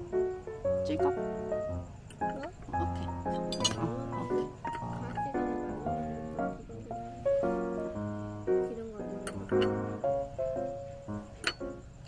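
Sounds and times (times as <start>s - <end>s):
plucked-string tune: 0.8s - 7.0s, 7.7s - 11.9s
sharp clink: 3.0s - 3.9s, 11.4s - 11.8s.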